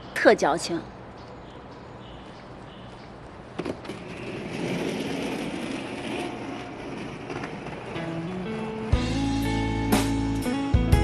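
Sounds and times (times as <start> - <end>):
suitcase wheels rattling on pavement: 2.2 - 9.7.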